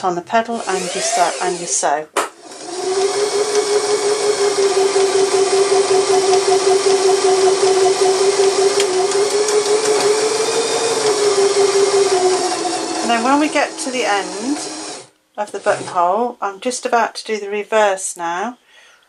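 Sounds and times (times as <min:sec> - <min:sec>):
sewing machine motor running: 0:00.6 - 0:01.8, 0:02.4 - 0:16.1
needle stitching rapidly: 0:02.4 - 0:16.1.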